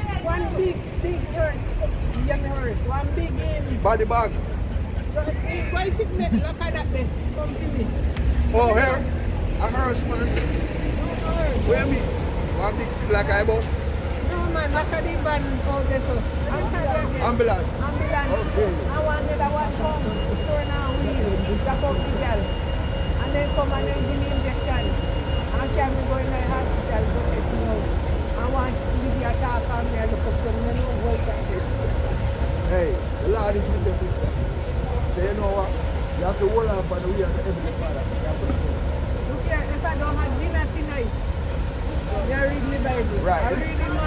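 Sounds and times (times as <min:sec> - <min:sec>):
street traffic rumble: 0:00.0 - 0:44.0
voices talking: 0:00.0 - 0:44.0.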